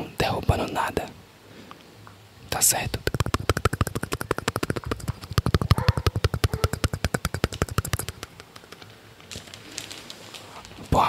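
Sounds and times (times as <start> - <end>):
rapid sharp tapping: 2.7 - 9.4.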